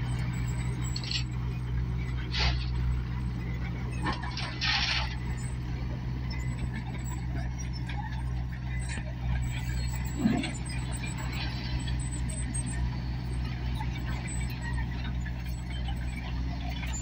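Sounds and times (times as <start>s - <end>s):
diesel engine running: 0.0s - 17.0s.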